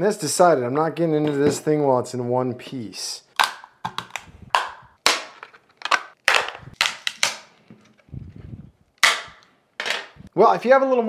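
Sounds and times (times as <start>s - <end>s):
plastic case snapping: 3.4s - 7.5s, 9.0s - 9.5s.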